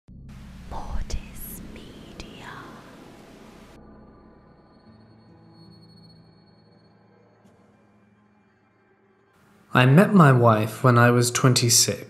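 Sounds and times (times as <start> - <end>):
low drone: 0.1 - 10.8
hissing whisper voice effect: 0.7 - 3.0.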